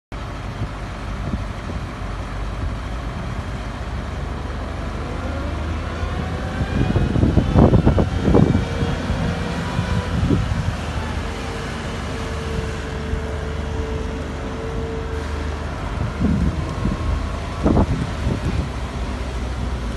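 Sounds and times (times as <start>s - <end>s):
diesel engine rumbling: 0.1s - 19.9s
engine bursts: 0.2s - 19.9s
steady whine: 4.5s - 19.9s.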